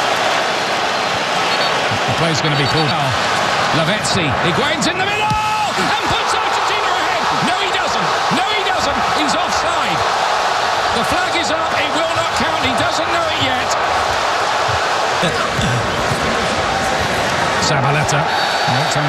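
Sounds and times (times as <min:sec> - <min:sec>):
stadium crowd cheering and shouting: 0:00.0 - 0:19.0.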